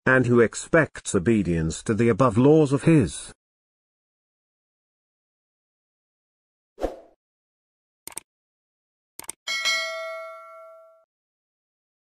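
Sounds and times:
notification bell ding: 9.5s - 11.1s.

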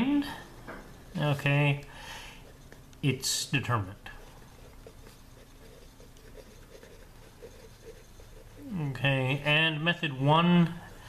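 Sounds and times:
pen writing on paper: 4.5s - 8.7s.

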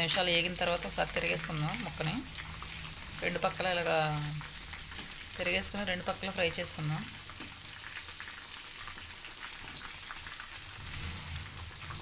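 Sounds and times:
fish sizzling in hot oil: 0.0s - 12.0s.

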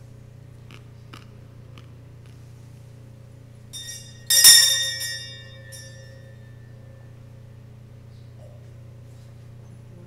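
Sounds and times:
small metal bells ringing: 3.8s - 7.1s.

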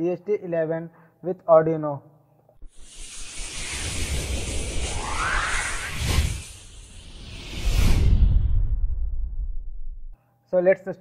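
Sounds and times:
cinematic whoosh: 2.6s - 10.2s.

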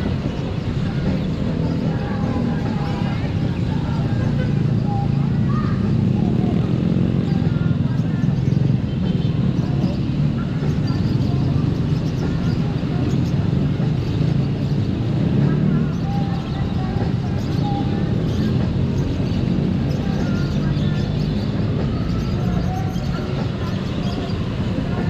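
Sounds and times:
road and wind noise: 0.0s - 25.0s.

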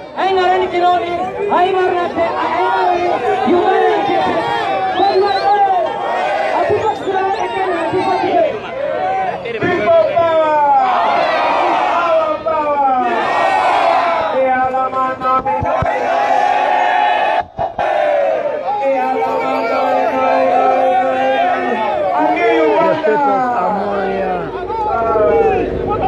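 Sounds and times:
crowd cheering and shouting: 0.0s - 26.0s.

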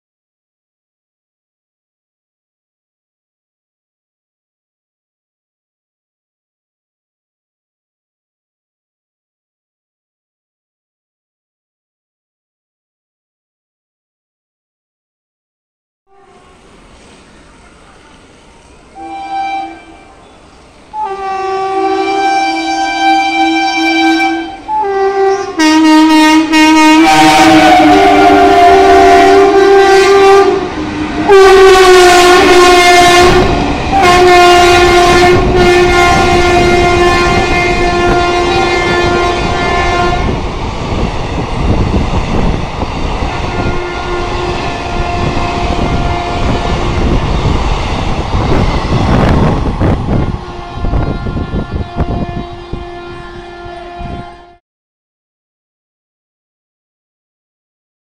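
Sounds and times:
locomotive horn blasts: 16.1s - 16.6s, 19.0s - 20.2s, 20.9s - 40.4s, 43.2s - 46.9s, 49.6s - 54.6s
train coaches rattling on rails: 16.3s - 54.3s.

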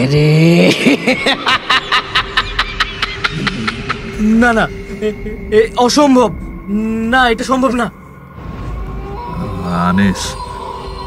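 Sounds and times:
person laughing: 0.7s - 5.5s
steady hum: 0.7s - 11.0s.

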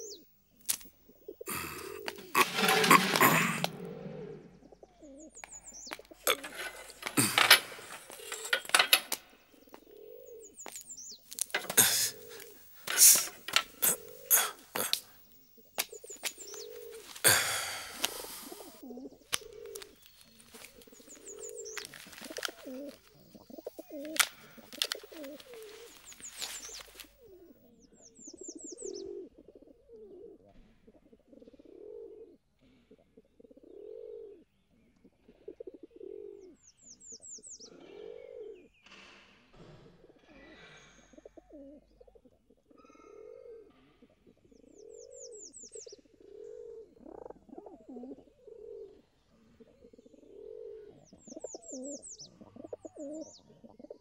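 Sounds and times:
small bird chirping: 0.0s - 29.2s, 49.8s - 54.0s
pigeons cooing: 0.0s - 38.8s, 39.9s - 54.0s
bag rustling and clicking: 6.0s - 9.3s, 10.6s - 27.2s.

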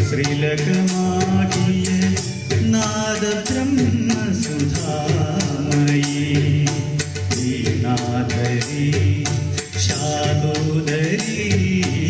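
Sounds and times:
man singing into a microphone: 0.0s - 12.0s
music accompaniment with percussion beat: 0.0s - 12.0s.

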